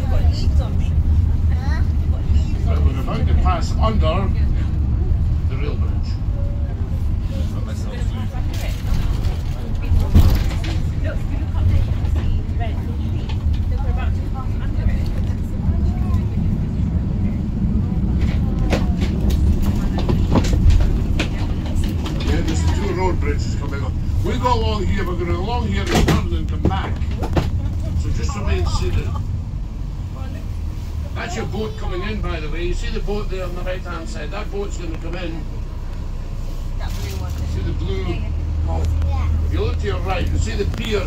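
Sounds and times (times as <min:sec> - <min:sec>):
bus engine and road rumble: 0:00.0 - 0:41.0.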